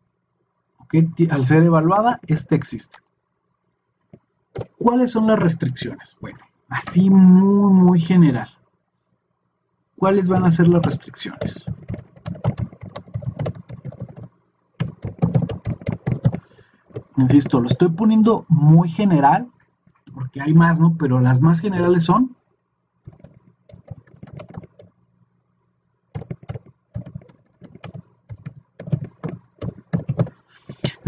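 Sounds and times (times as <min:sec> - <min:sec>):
computer keyboard typing: 0:04.6 - 0:04.9, 0:10.2 - 0:18.0, 0:23.0 - 0:24.9, 0:26.1 - 0:30.9.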